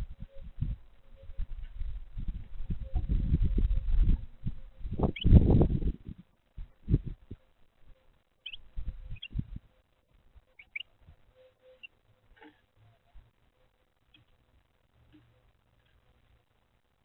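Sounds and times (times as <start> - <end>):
short high bird chirps: 8.4 - 9.4, 10.6 - 11.9.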